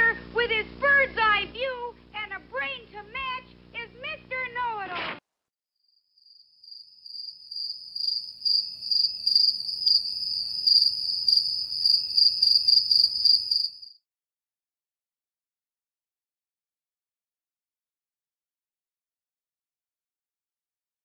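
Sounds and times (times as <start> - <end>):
cricket chirping: 5.8 - 14.0.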